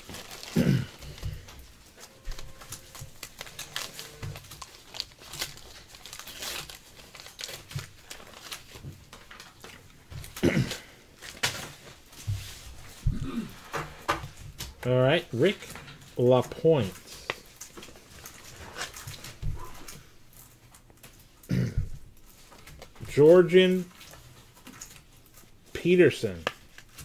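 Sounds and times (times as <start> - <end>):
wax paper wrapper crinkling: 0.0 - 10.4, 15.4 - 21.4, 22.1 - 27.0.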